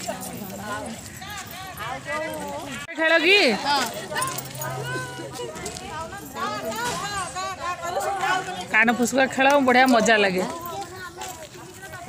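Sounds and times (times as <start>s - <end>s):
women calling out and chanting: 0.0s - 12.0s.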